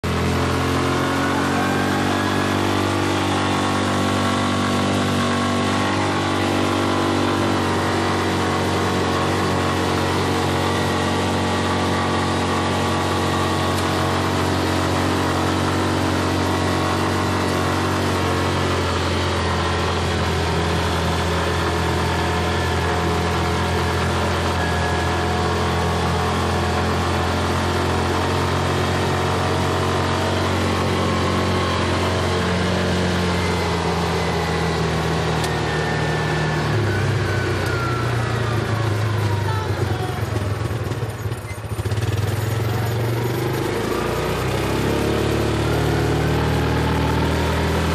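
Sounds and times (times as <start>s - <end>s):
road noise: 0.0s - 47.9s
utility vehicle engine running: 0.0s - 47.9s.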